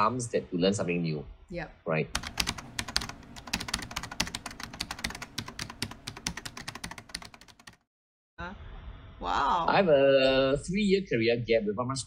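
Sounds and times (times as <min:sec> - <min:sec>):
rapid keyboard typing: 0:02.2 - 0:07.9.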